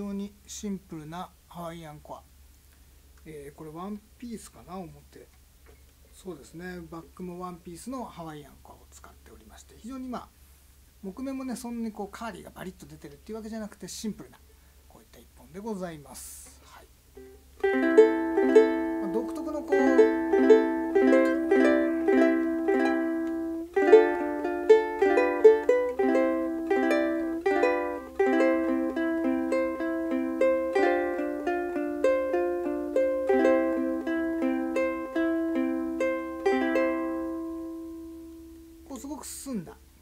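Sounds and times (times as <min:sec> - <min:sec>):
ukulele plucked melody and chords: 0:17.2 - 0:38.9.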